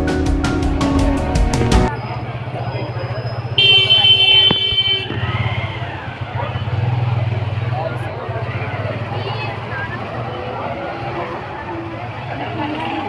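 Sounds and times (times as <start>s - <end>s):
people talking: 1.9s - 13.0s.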